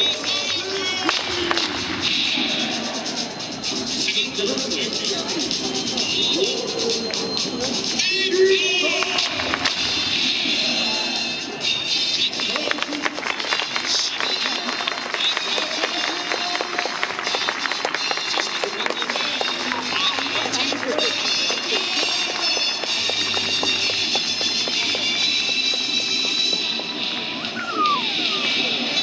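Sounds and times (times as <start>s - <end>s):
announcer speaking: 0.0s - 1.6s, 4.0s - 5.6s, 6.2s - 9.4s, 12.3s - 17.4s, 18.4s - 23.7s
music over loudspeakers: 0.0s - 29.0s.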